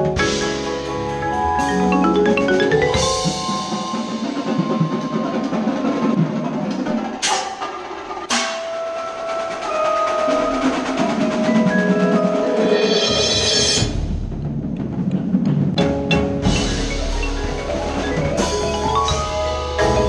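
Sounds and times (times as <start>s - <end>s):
marimba notes ringing: 0.0s - 6.5s, 8.6s - 13.8s, 15.8s - 20.0s
sharp struck percussion accents: 0.0s - 14.4s.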